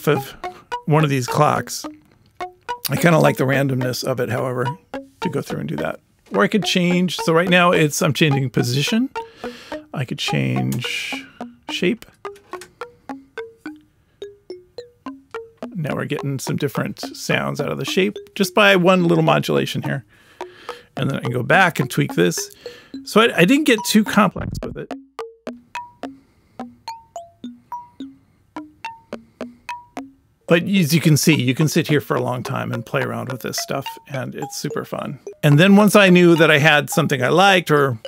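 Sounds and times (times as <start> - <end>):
synth mallet-like struck notes: 0.0 - 5.6, 6.6 - 18.6, 21.0 - 30.2, 31.3 - 37.3.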